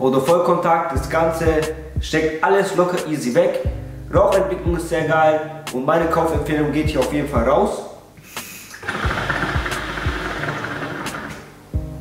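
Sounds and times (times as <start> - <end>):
deep gurgle: 8.8 - 11.2.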